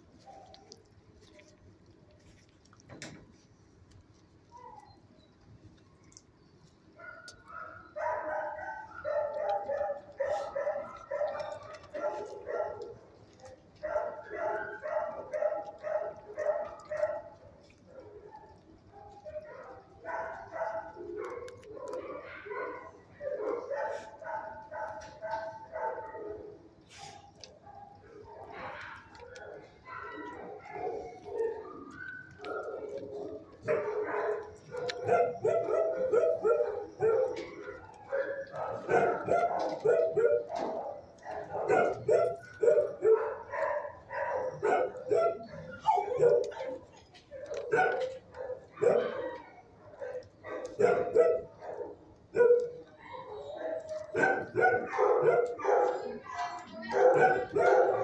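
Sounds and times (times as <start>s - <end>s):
dogs barking: 7.0s - 58.0s.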